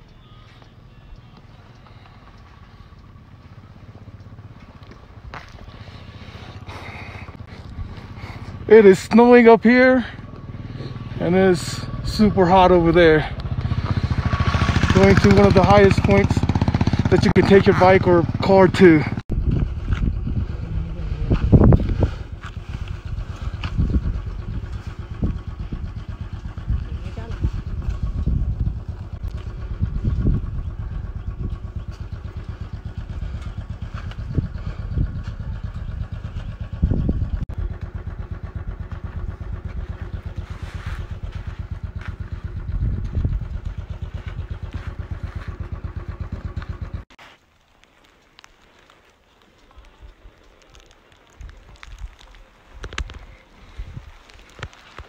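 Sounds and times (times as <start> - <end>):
motorcycle engine running: 0.0 - 47.2, 47.8 - 55.0.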